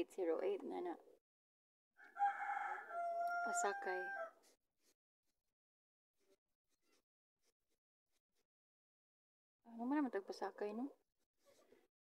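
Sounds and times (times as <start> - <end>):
rooster crowing: 2.0 - 4.4.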